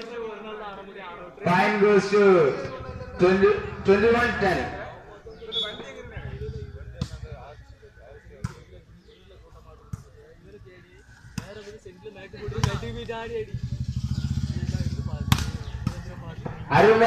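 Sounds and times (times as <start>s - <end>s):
voices of players and onlookers: 0.0s - 17.0s
engine running: 1.7s - 7.9s, 12.5s - 16.6s.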